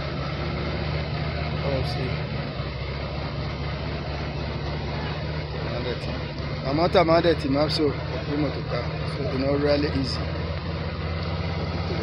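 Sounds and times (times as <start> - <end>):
diesel truck engine droning: 0.0 - 12.0.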